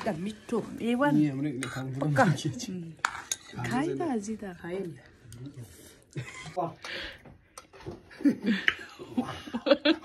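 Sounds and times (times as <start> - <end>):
spoon clinking against steel bowl: 3.0 - 3.8.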